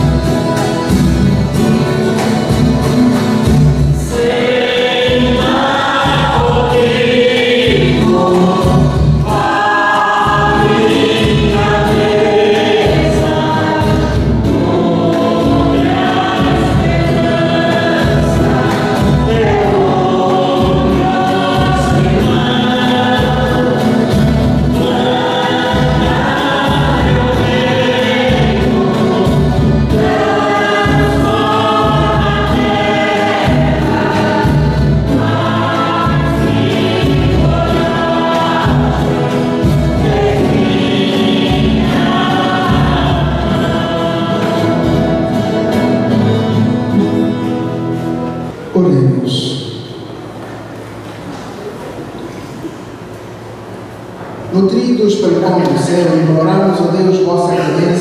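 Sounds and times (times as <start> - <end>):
instrumental accompaniment: 0.0 - 54.4
choir singing a hymn: 0.0 - 54.6.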